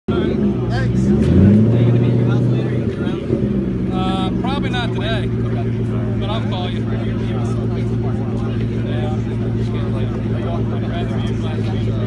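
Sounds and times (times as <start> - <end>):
car engine idling: 0.1 - 12.0
nearby voices: 0.1 - 12.0.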